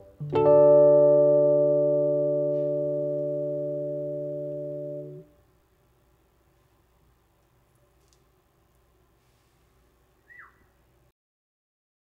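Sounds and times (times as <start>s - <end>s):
keyboard chord: 0.0s - 5.4s.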